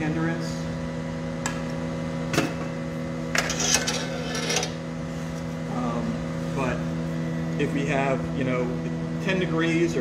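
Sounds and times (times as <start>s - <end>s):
furnace and blower hum: 0.0s - 10.0s.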